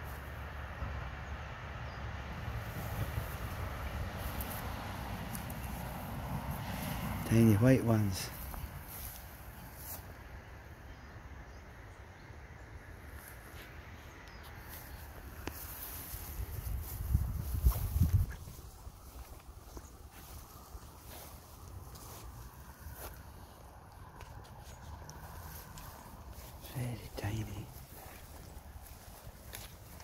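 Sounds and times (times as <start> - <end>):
low rumble on microphone: 16.1 - 29.1.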